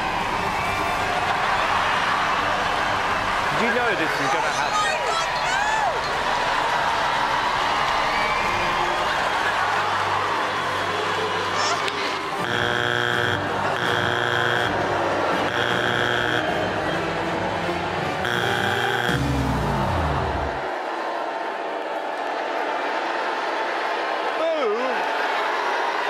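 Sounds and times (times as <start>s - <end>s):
harsh buzzer: 12.4s - 17.0s, 18.2s - 20.6s.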